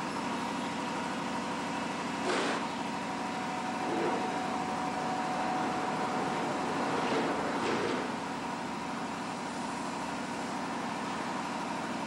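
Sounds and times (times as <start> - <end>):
loom machine hum: 0.0 - 11.6
short scraping rush: 2.2 - 2.7
fine rapid pulsing: 3.3 - 8.7.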